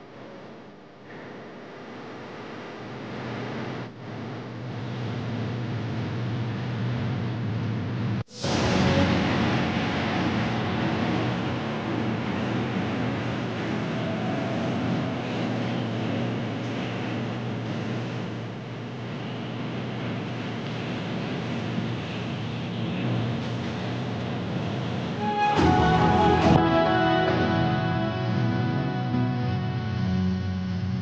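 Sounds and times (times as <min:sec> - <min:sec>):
outdoor rushing ambience: 0:02.4 - 0:31.0.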